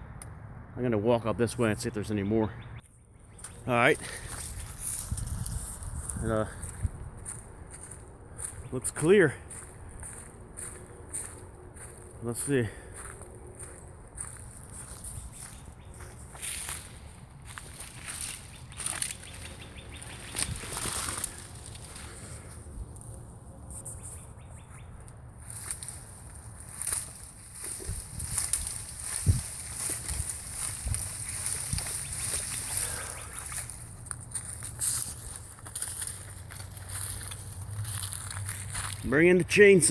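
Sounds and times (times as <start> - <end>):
footsteps crunching dry leaves: 3.3 - 39.5.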